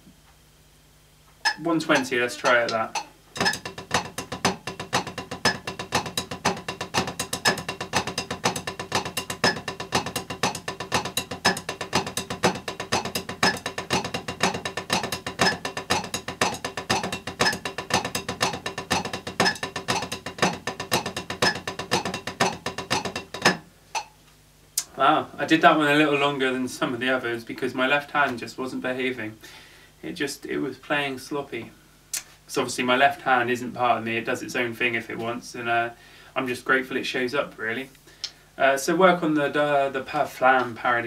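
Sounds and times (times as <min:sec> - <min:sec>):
drumsticks on practice pad: 0:01.4 - 0:24.2.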